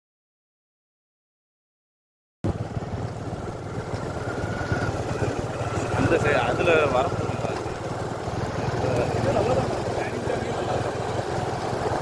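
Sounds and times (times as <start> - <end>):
vehicle engine running: 2.4 - 12.0.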